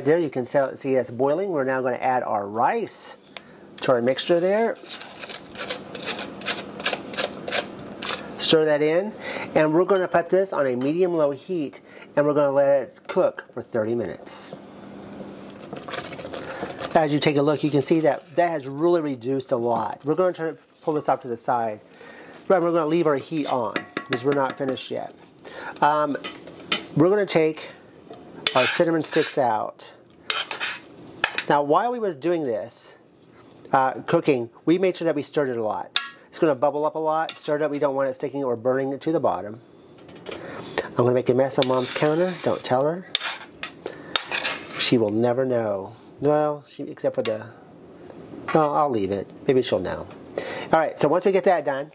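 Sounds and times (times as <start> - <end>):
spoon stirring in saucepan: 4.2 - 8.3, 15.6 - 18.5, 23.3 - 24.8, 28.4 - 29.4, 30.3 - 31.5, 41.5 - 44.9
spoon clinking against pot: 23.8 - 24.6.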